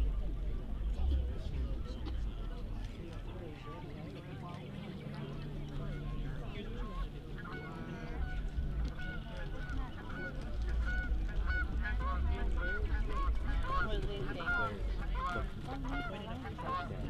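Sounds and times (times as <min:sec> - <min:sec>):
low rumble: 0:06.0 - 0:15.6
geese honking: 0:06.0 - 0:17.0.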